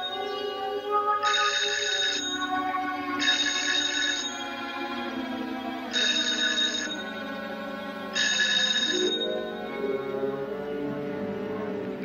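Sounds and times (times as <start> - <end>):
low orchestral film score: 0.0 - 12.0
telephone bell ringing: 1.2 - 2.5, 3.2 - 4.6, 5.9 - 7.2, 8.2 - 9.7.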